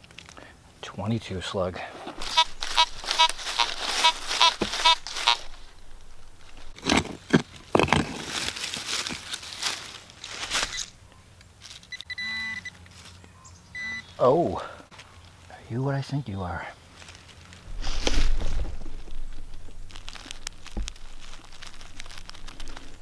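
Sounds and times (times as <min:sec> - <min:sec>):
hand digger scraping soil: 0:01.9 - 0:09.6
metal detector short beeps: 0:02.2 - 0:05.4, 0:11.9 - 0:12.8, 0:13.8 - 0:14.1.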